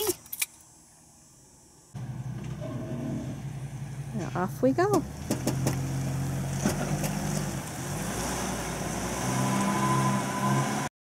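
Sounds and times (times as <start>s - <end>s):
motorhome engine running: 2.0s - 9.1s.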